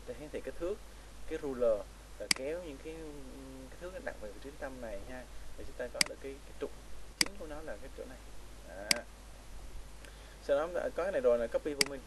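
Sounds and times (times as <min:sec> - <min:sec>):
computer mouse clicks: 0:02.3 - 0:02.5.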